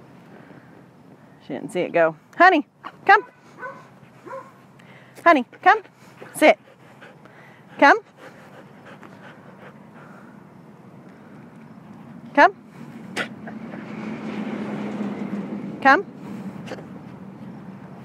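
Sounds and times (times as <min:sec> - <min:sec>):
vehicle passing: 0:03.0 - 0:18.0.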